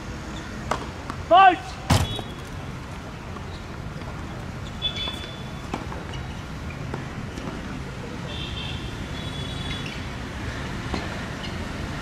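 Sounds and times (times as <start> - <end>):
person shouting: 1.3 - 1.8.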